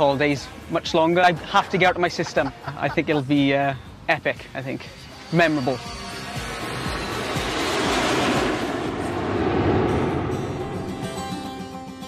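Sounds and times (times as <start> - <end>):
background music: 0.0 - 12.0
jet engine rushing: 5.0 - 11.8.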